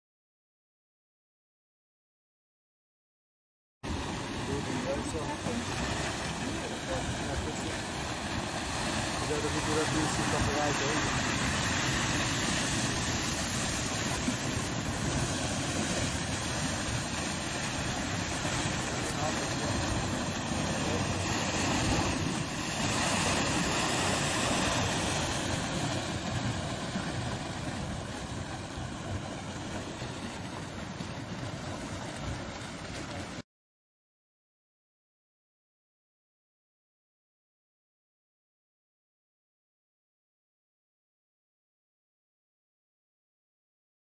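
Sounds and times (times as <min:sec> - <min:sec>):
floodwater rushing: 0:03.9 - 0:33.4.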